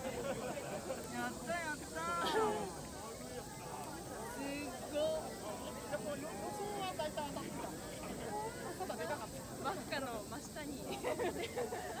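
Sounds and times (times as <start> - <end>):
faint steady hiss: 0.0 - 12.0
people talking: 0.0 - 12.0.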